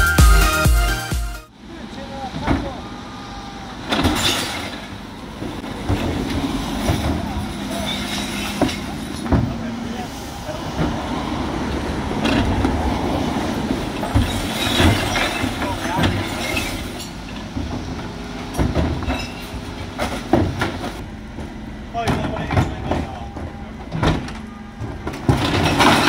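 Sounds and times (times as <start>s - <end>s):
refuse truck running: 0.0s - 26.0s
bin lift clunks: 13.9s - 26.0s.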